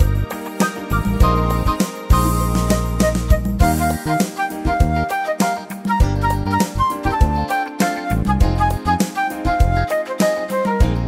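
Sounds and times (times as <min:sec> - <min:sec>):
bass line: 0:00.0 - 0:00.3, 0:00.9 - 0:05.1, 0:06.0 - 0:07.5, 0:08.1 - 0:09.9
keyboard melody: 0:00.0 - 0:11.0
drum beat: 0:00.6 - 0:09.8.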